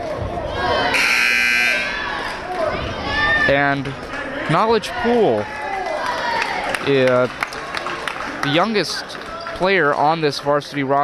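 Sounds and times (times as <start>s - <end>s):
scoreboard horn blast: 0.9s - 2.0s.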